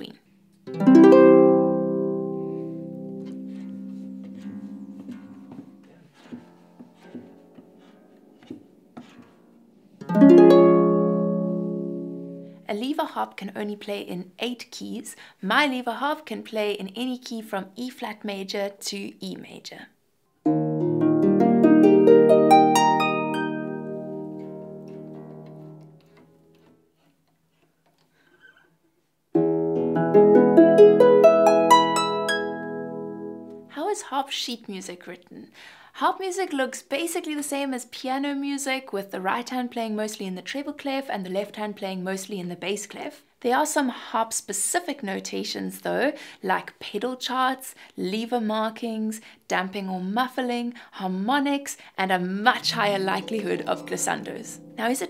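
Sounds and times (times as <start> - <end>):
harp chord ringing: 0.7 - 5.8, 10.1 - 12.6, 20.5 - 25.9, 29.8 - 33.7, 52.6 - 55.0
harp note plucked and ringing: 52.6 - 55.0.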